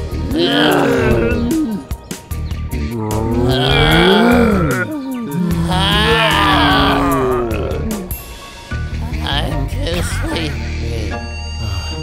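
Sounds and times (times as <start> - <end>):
background music: 0.0 - 12.0
cartoon voice groaning: 0.3 - 1.8, 3.1 - 8.2.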